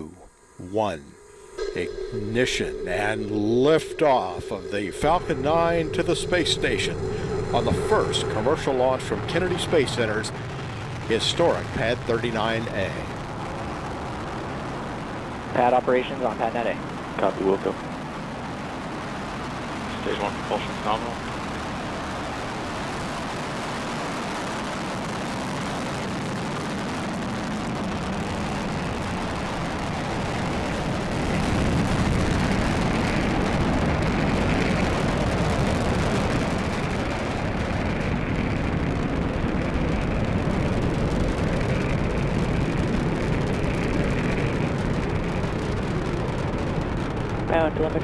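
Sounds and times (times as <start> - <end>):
rocket engines rumbling: 0.0 - 48.0.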